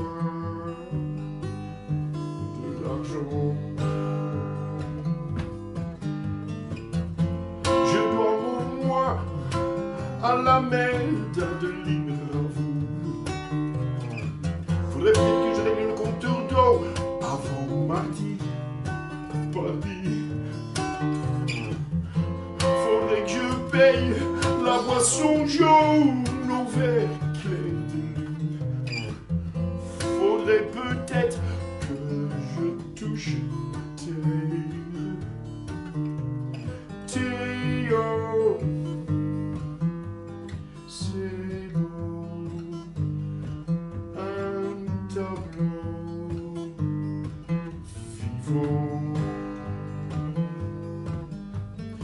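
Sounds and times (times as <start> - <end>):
man singing: 0.0 - 1.1, 2.4 - 5.2, 7.7 - 29.2, 29.8 - 36.0, 36.6 - 39.9, 40.7 - 43.2, 44.0 - 52.0
acoustic guitar: 0.0 - 52.0.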